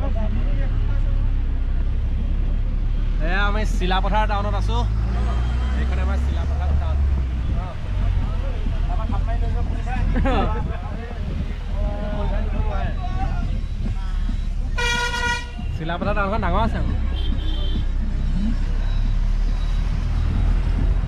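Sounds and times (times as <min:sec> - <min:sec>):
vehicle engine rumble and road noise: 0:00.0 - 0:21.0
people talking: 0:03.2 - 0:14.7, 0:15.6 - 0:19.1.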